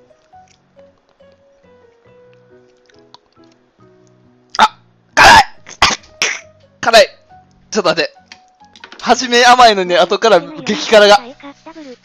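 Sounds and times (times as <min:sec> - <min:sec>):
faint background music: 0:00.0 - 0:12.0
man coughing and sputtering: 0:04.6 - 0:06.5.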